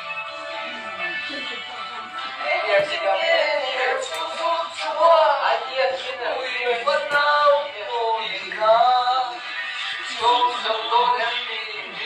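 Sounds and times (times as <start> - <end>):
music with singing voice: 0.0 - 12.0.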